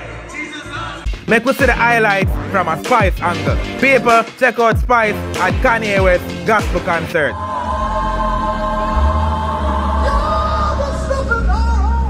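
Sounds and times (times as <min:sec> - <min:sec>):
deep bass: 0:00.7 - 0:04.1, 0:04.8 - 0:12.0
gospel choir singing: 0:07.2 - 0:12.0.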